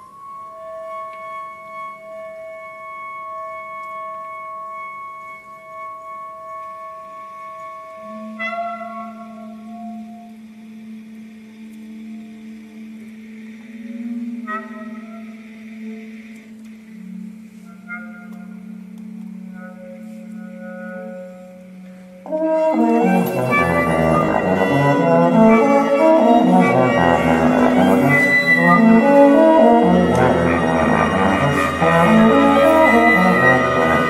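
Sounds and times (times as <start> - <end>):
chamber ensemble held tones: 0.0 - 34.0
low held note: 11.9 - 34.0
sharp musical accent: 22.7 - 34.0.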